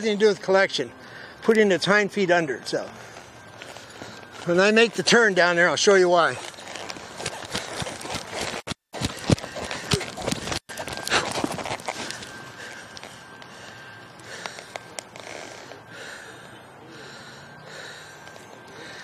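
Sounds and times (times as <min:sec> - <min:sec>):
hoofbeats on dirt: 0:06.8 - 0:12.3.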